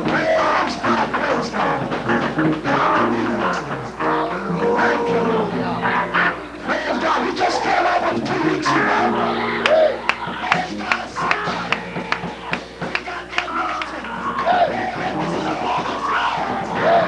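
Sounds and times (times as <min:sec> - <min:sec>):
held keyboard chords: 0:00.0 - 0:17.0.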